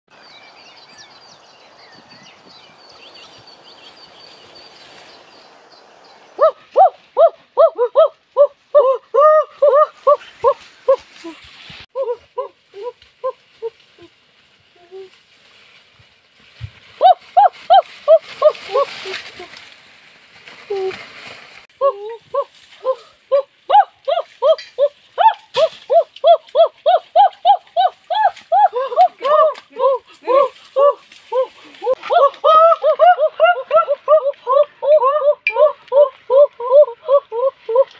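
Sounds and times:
boy yelping: 21.8s - 37.9s
high-pitched hooting calls: 21.8s - 37.9s.

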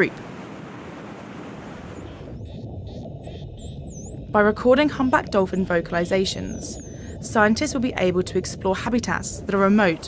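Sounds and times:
ocean surf breaking: 0.0s - 2.1s
low underwater rumble: 1.8s - 10.0s.

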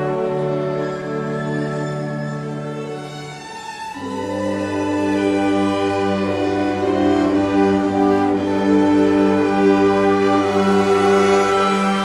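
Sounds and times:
orchestral violins playing: 0.0s - 12.0s.

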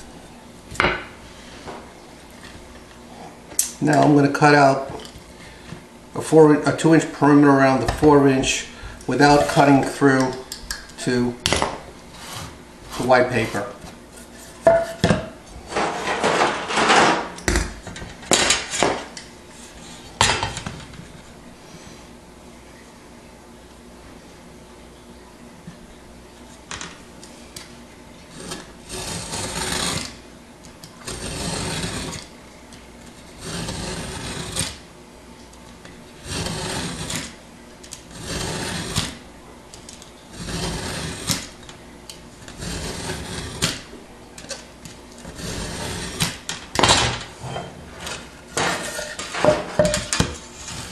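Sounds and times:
ruler scraping on board: 28.3s - 30.1s, 31.1s - 32.3s, 33.4s - 34.8s, 36.2s - 37.3s, 38.1s - 39.2s, 40.3s - 41.4s, 42.5s - 43.8s, 45.2s - 46.4s.

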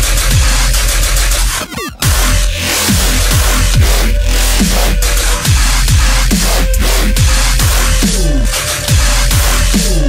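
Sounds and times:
heavy dubstep music: 0.0s - 10.0s.

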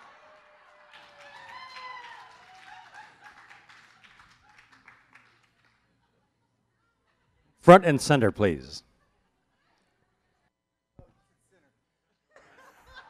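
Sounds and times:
faint audience applause: 0.0s - 5.8s.

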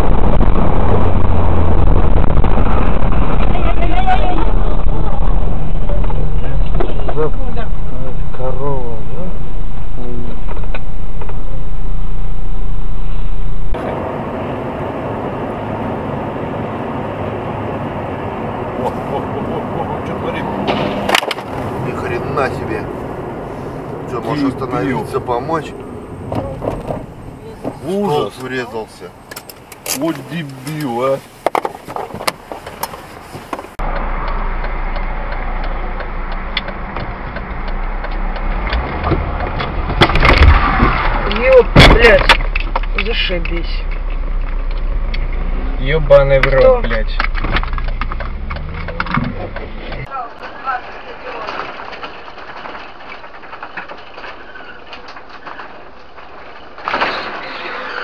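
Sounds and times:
loud low drone: 0.0s - 17.7s, 33.8s - 50.1s
road and engine noise: 0.0s - 58.0s
loud crack: 20.6s - 22.1s, 37.9s - 45.5s, 50.4s - 58.0s.

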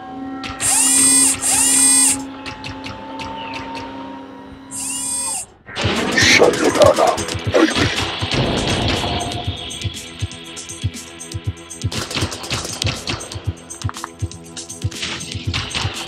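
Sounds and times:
music: 0.0s - 16.0s
drill-like mechanical whirring: 0.6s - 2.2s, 4.7s - 5.5s.

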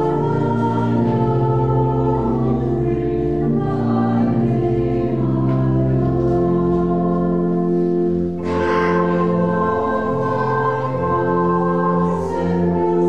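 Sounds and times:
church choir singing: 0.0s - 13.0s
organ accompaniment: 0.0s - 13.0s.

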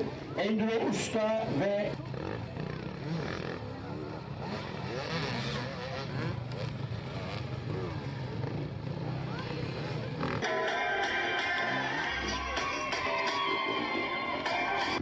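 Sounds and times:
dirt bike engines running: 0.0s - 10.6s.

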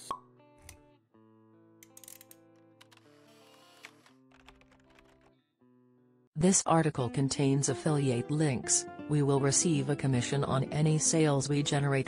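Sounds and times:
soft background music: 6.4s - 12.0s.

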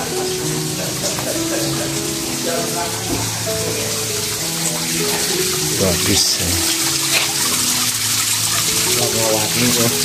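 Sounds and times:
fountain water splashing: 0.0s - 10.0s.

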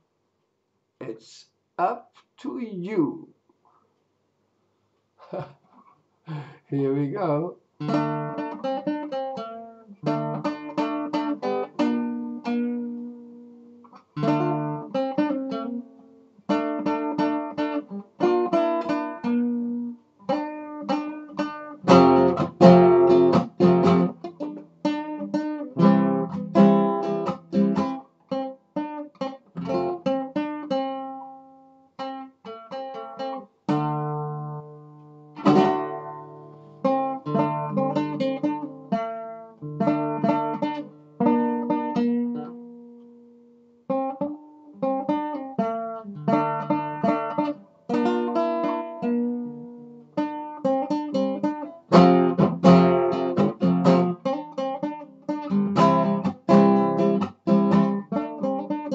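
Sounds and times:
fingerpicked acoustic guitar: 7.2s - 58.9s.

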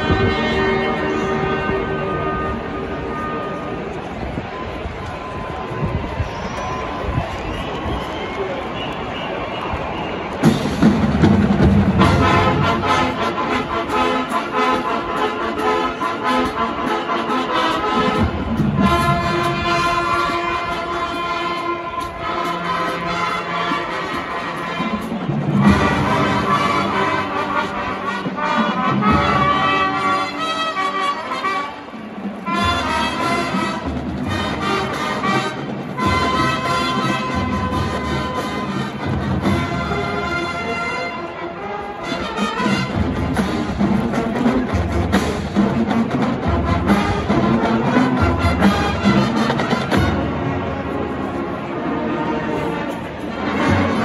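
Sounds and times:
marching band brass playing: 0.0s - 5.7s, 7.3s - 54.0s.

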